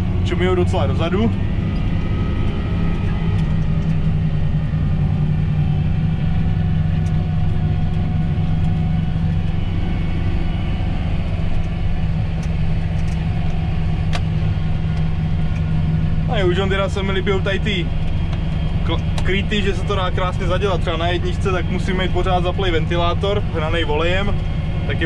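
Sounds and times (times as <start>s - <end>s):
tractor engine droning: 0.0s - 25.0s.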